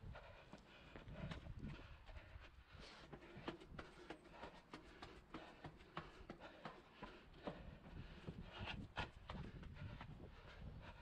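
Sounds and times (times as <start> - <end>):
running footsteps on pavement: 0.0 - 11.0.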